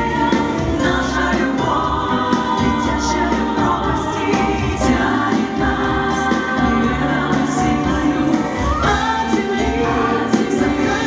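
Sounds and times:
band accompaniment with bass: 0.0 - 11.0
female vocal group singing pop: 0.0 - 11.0.

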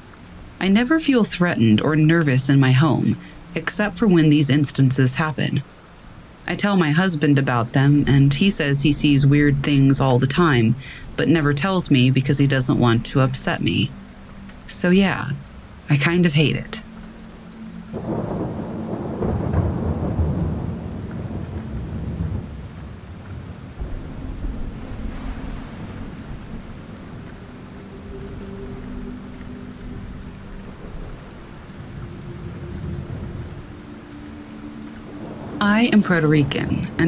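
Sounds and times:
steady rain: 0.0 - 37.0
thunder rumbling: 6.3 - 17.0, 17.7 - 37.0.

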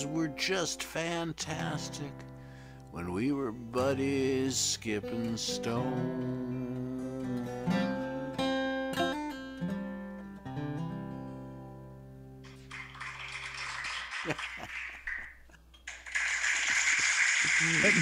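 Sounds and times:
acoustic guitar chords ringing: 0.0 - 12.4
recorded applause: 12.5 - 18.0.

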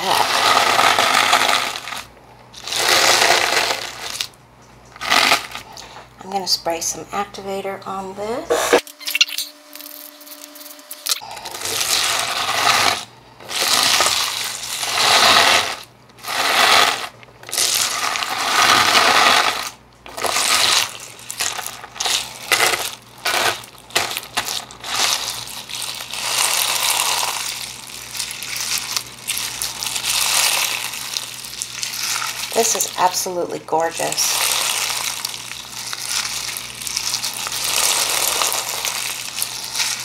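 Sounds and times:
slime crunching and crackling: 0.0 - 5.8, 9.8 - 40.0.

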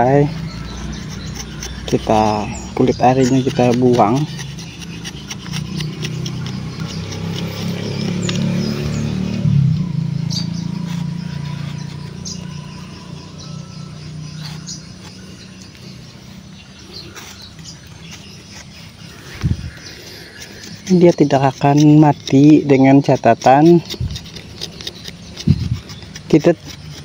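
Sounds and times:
low drone: 0.0 - 22.7
birds chirping: 0.0 - 27.0
bark being peeled: 0.3 - 27.0.

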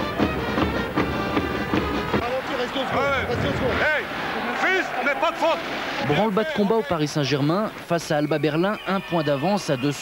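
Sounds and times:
background music: 0.0 - 4.1
voices shouting in an arena: 2.2 - 6.9.

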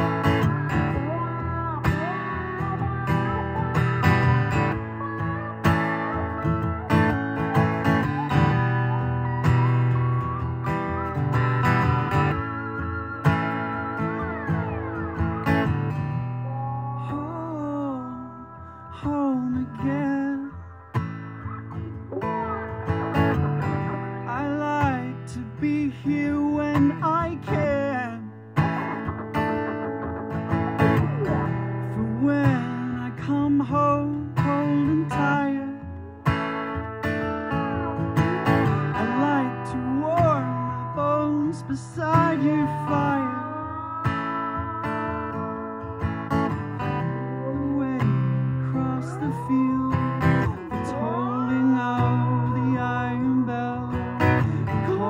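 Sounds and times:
lap steel guitar sliding notes: 0.0 - 24.8, 28.7 - 32.1, 35.9 - 55.0
acoustic guitar strumming: 0.0 - 55.0.

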